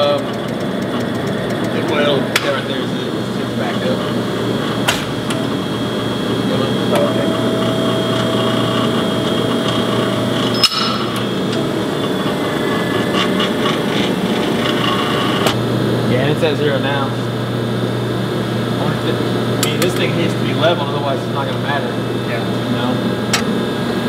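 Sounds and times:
steady tone: 0:00.0 - 0:15.5
hydraulic pump humming: 0:00.0 - 0:24.0.

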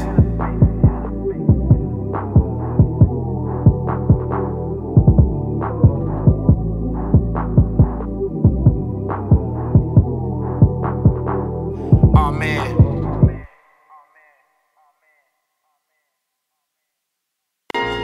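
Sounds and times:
muffled instrumental hip-hop beat: 0:00.0 - 0:13.5.

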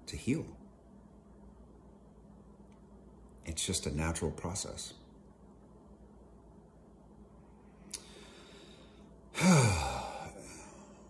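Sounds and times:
man sighing: 0:09.3 - 0:11.0.

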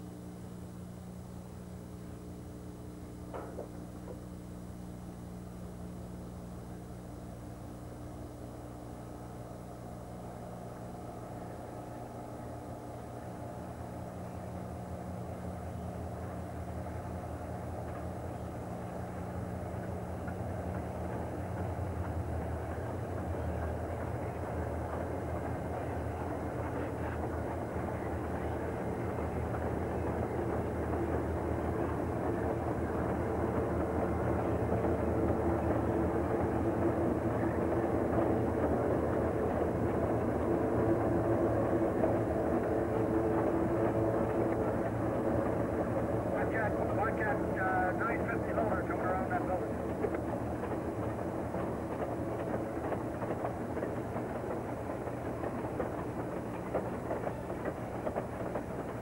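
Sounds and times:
diesel locomotive engine drone: 0:00.0 - 0:59.0.

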